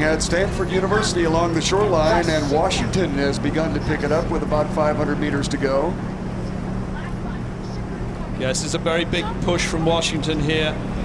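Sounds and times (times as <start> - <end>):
motorboat engine humming: 0.0 - 11.0.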